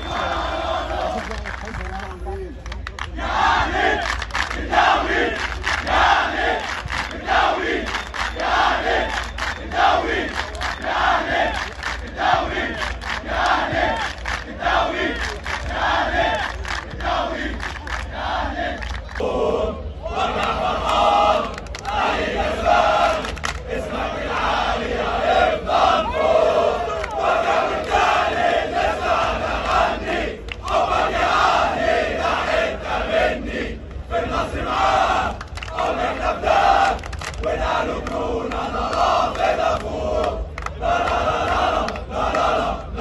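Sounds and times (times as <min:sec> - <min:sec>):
stadium crowd chanting: 0:00.0 - 0:01.4, 0:03.0 - 0:43.0.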